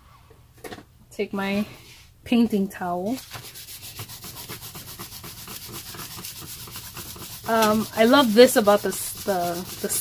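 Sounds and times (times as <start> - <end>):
cloth scrubbing on paper: 3.2 - 10.0.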